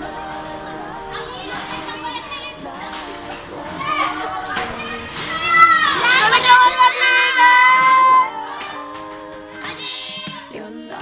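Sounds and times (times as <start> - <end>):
young people talking over each other: 0.0 - 10.6
person singing long high notes: 0.0 - 11.0.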